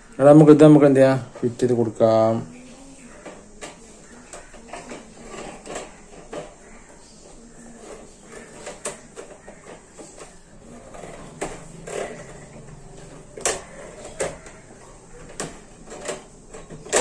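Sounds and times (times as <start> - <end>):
fan wire guard clicking and rattling: 3.0 - 17.0.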